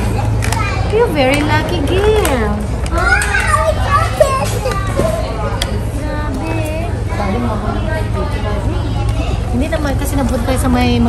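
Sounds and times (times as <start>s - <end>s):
child talking: 0.0s - 5.5s.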